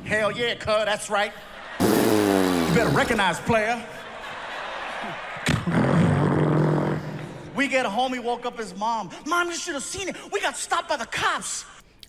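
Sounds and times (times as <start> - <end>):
soft audience reaction: 1.3 - 7.6.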